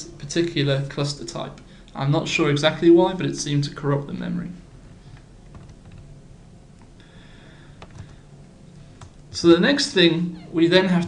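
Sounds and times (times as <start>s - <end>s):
steady low hum: 0.0s - 11.0s
computer keys clicking: 5.5s - 6.1s, 7.8s - 8.2s.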